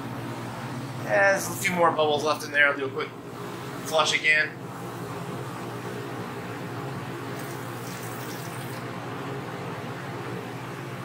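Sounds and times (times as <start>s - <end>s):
beer streaming into plastic bucket: 7.4s - 8.8s.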